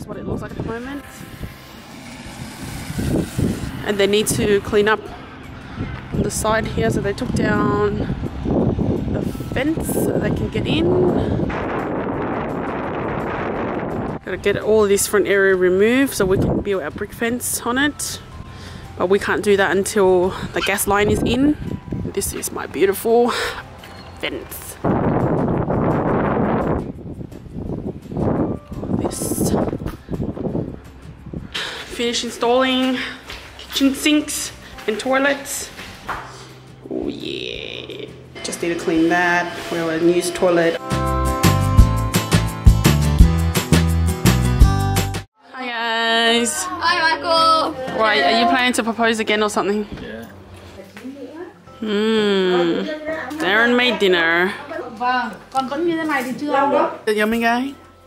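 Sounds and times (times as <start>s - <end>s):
low rumble: 0.0s - 14.7s
wind buffeting microphone: 0.0s - 17.3s, 20.0s - 23.2s, 24.3s - 32.8s.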